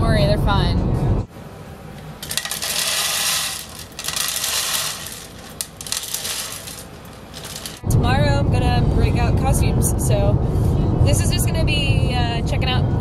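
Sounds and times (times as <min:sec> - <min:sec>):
kibble clattering in plastic bowl: 0:02.2 - 0:07.8.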